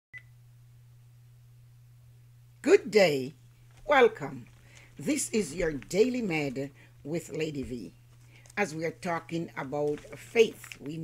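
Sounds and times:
faint low hum: 0:00.2 - 0:11.0.

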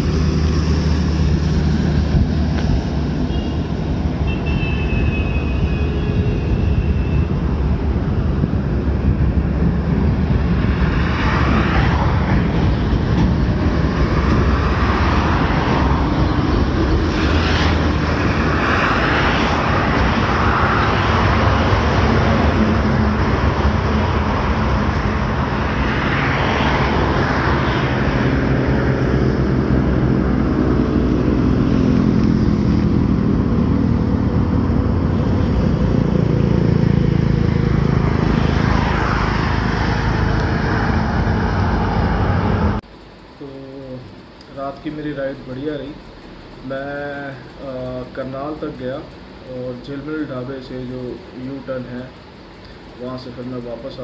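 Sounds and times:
road and wind noise: 0:00.0 - 0:54.0.

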